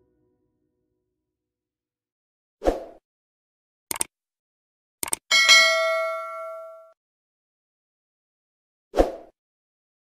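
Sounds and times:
mouse clicks: 0:03.9 - 0:04.1, 0:05.0 - 0:05.2
bell ding: 0:05.3 - 0:07.0.

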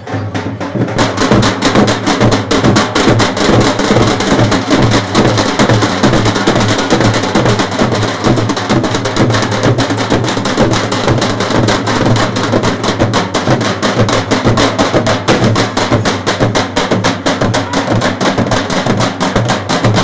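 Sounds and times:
dhol drums fast beat: 0:00.0 - 0:20.0.

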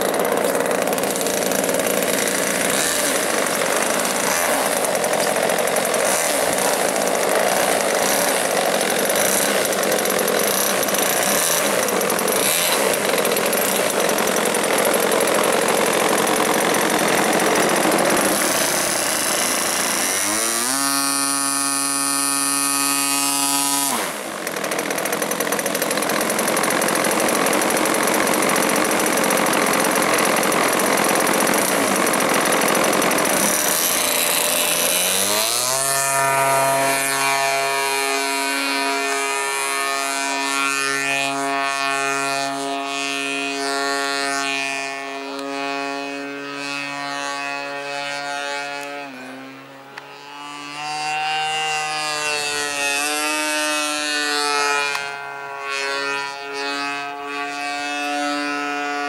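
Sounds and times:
model plane engine running: 0:00.0 - 0:59.0.

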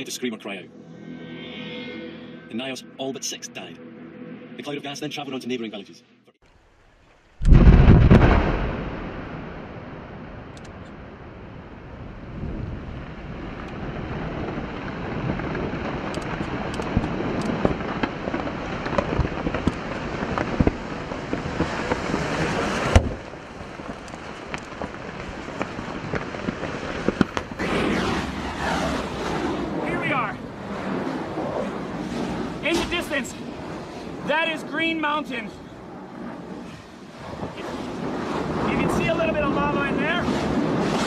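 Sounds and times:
sharp cracks and crackling: 0:06.4 - 0:11.9, 0:12.8 - 0:41.0
volcanic eruption boom: 0:07.4 - 0:41.0
continuous rumble: 0:07.5 - 0:41.0.

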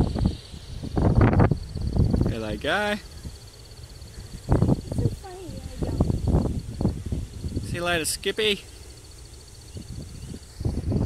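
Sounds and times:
wind rumble on microphone: 0:00.0 - 0:08.3, 0:09.6 - 0:11.0
faint pulsing high tone: 0:00.0 - 0:11.0.

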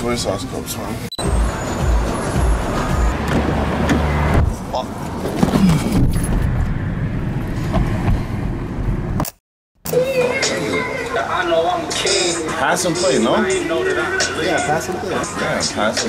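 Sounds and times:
music playing: 0:01.2 - 0:03.3, 0:09.9 - 0:16.0
indistinct voices: 0:09.9 - 0:16.0.

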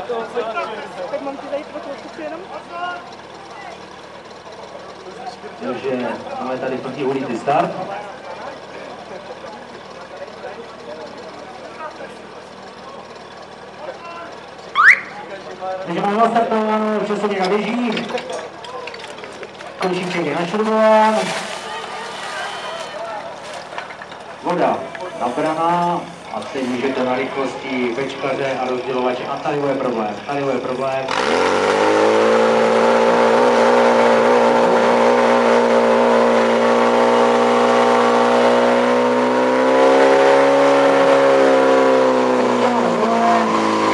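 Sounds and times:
voices: 0:00.0 - 0:31.2
fire pump engine running: 0:00.0 - 0:43.9.

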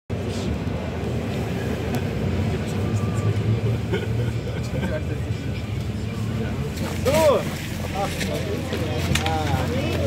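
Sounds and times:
bus engine rumble: 0:00.1 - 0:10.0
passengers murmuring: 0:00.1 - 0:10.0.

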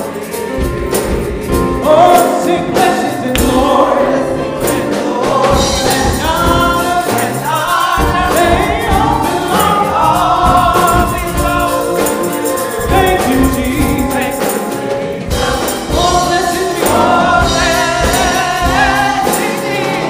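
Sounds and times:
gospel choir singing: 0:00.0 - 0:20.0
keyboard: 0:00.0 - 0:20.0
steady beat: 0:00.0 - 0:20.0.

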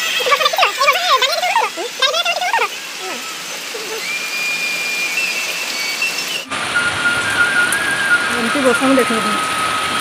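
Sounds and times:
heavy rain on paving: 0:00.0 - 0:10.0
thin high whistling tone: 0:02.4 - 0:10.0.

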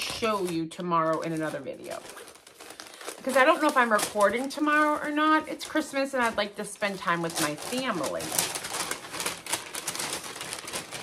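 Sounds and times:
paper rustling and crinkling: 0:00.0 - 0:11.0.

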